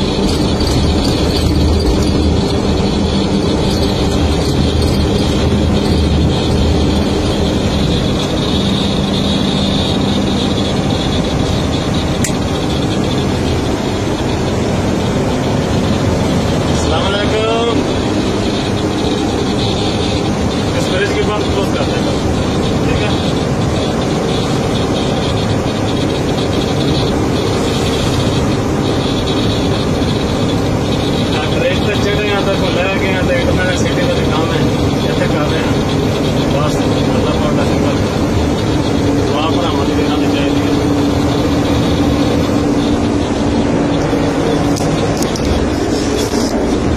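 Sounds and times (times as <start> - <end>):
diesel engine drone in cab: 0.0 - 46.9.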